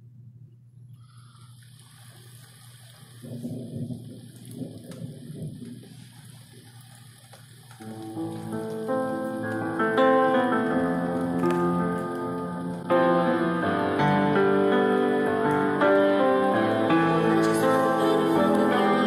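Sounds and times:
rain falling: 1.0 - 19.0
thunder rumbling: 1.9 - 19.0
piano notes: 7.8 - 19.0.

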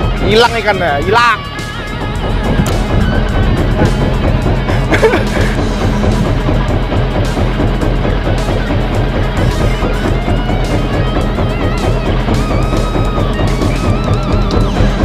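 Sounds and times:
background music with guitar: 0.0 - 15.0
low drone: 0.0 - 15.0.

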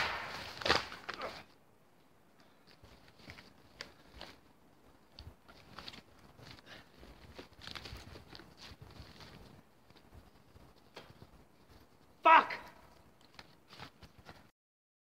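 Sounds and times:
crunching snow and brush: 2.5 - 12.2, 12.9 - 14.5
footsteps in snow: 5.5 - 12.2.

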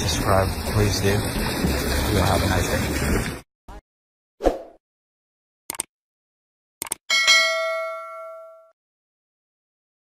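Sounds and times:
bright bell chime: 7.1 - 8.8.

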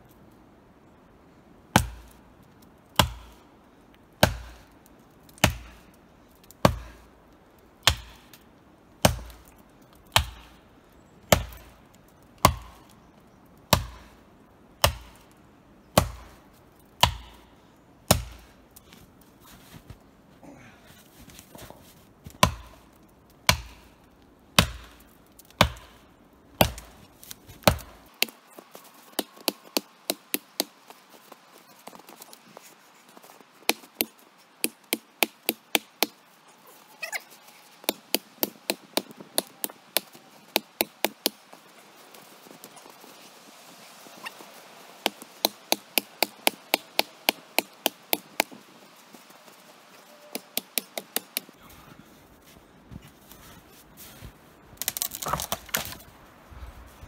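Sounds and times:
axe chopping wood: 1.7 - 2.2, 3.0 - 3.4, 4.2 - 4.7, 5.4 - 5.8, 6.6 - 7.0, 7.8 - 8.4, 9.0 - 9.5, 10.1 - 10.6, 11.3 - 11.7, 12.4 - 12.9, 13.7 - 14.1, 14.8 - 15.3, 16.0 - 16.4, 17.0 - 17.5, 18.1 - 18.5, 22.3 - 22.8, 23.4 - 23.9, 24.6 - 26.0, 26.6 - 28.4, 29.1 - 30.7, 33.7 - 36.2, 37.8 - 41.4, 45.0 - 48.5, 50.3 - 51.5, 54.8 - 56.0.

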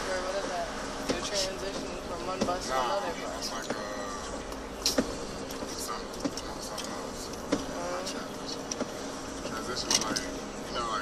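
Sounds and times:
car engine and tyres drone: 0.0 - 11.0.

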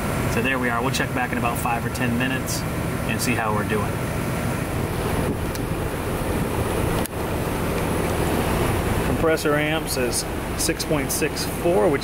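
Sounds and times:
compressor hum: 0.0 - 12.0
condenser fan rushing: 0.0 - 12.0.

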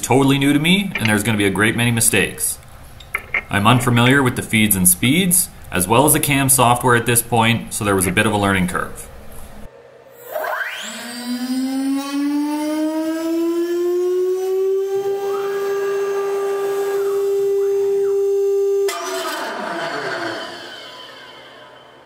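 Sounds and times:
mill spindle whine: 0.0 - 22.0.

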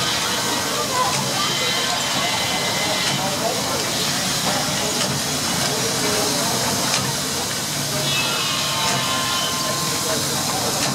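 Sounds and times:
faint voices talking: 0.0 - 10.9
steam hissing: 0.0 - 10.9.

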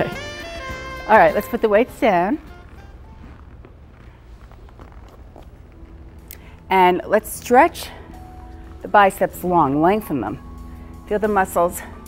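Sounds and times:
low hum: 0.0 - 11.2
footsteps on hardwood floor: 1.5 - 6.7.

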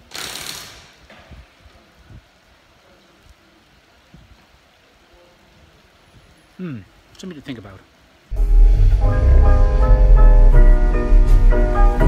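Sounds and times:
light rain hissing: 0.0 - 12.0.

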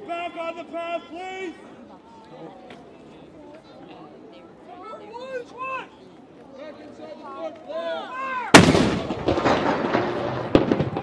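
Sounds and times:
artillery gun firing: 8.5 - 11.0.

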